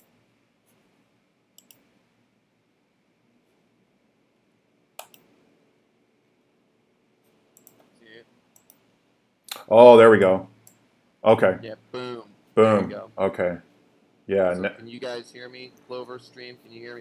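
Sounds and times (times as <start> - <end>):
faint computer mouse clicks: 1.6 - 1.9, 5.0 - 5.3, 7.6 - 8.0, 8.6 - 8.9.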